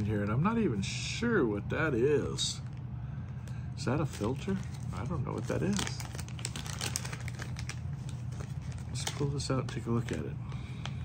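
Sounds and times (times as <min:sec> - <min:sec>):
steady low hum: 0:00.0 - 0:11.0
fittings clicking in plastic bag: 0:04.2 - 0:07.8.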